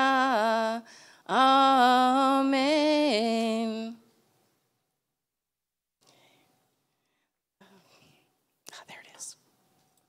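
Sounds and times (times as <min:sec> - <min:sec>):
person whispering: 0:08.7 - 0:09.4.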